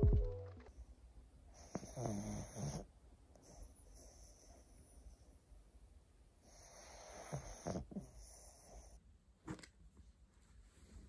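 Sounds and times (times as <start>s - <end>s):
dog snoring: 1.6s - 4.6s, 6.4s - 9.0s.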